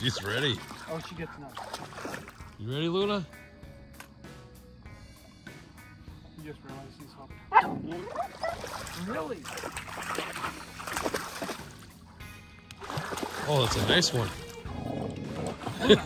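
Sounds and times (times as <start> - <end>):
dog splashing in water: 0.0 - 2.6, 8.0 - 12.0, 12.8 - 14.7
background music: 0.0 - 9.4, 10.2 - 16.0.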